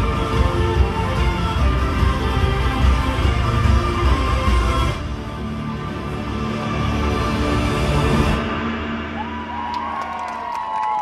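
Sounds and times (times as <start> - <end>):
young voices cheering and whooping: 9.2 - 11.0.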